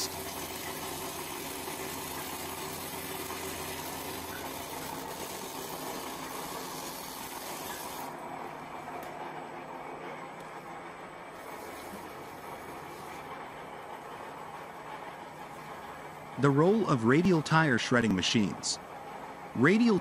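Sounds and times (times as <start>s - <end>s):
tire shredder motor hum: 0.0s - 8.2s.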